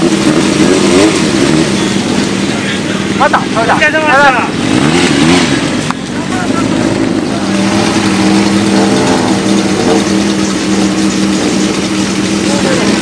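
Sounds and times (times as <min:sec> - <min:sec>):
motorcycle engine idling: 0:00.0 - 0:04.6, 0:05.7 - 0:13.0
people talking: 0:01.8 - 0:04.6, 0:05.9 - 0:10.1, 0:12.2 - 0:13.0.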